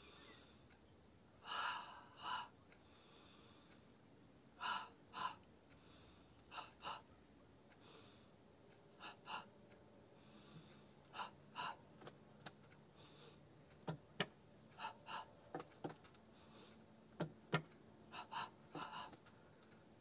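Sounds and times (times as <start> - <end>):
person breathing sharply: 10.2 - 11.8, 13.0 - 13.4, 16.3 - 16.8, 17.6 - 19.2.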